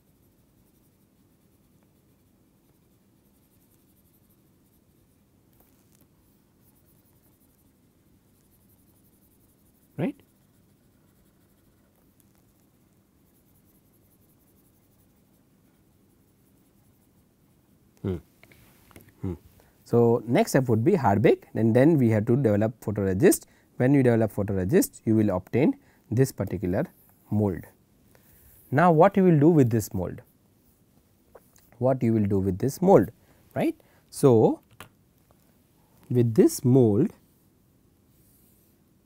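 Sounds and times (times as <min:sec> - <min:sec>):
stylus scratching on tablet: 0:00.0 - 0:18.0.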